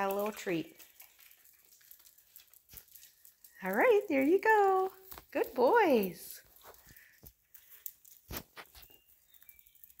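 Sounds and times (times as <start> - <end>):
dog claws tapping on concrete: 0.0 - 10.0.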